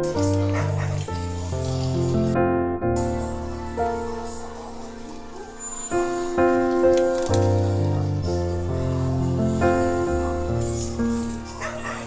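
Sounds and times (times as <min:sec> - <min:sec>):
music of slow held chords: 0:00.0 - 0:12.0.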